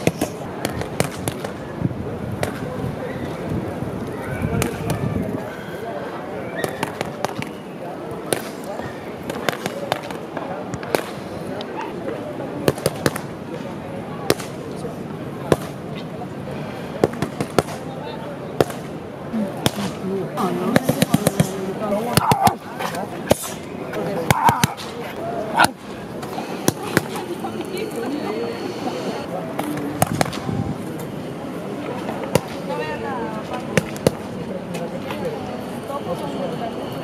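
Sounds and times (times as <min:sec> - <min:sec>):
murmur of voices: 0:00.0 - 0:37.0.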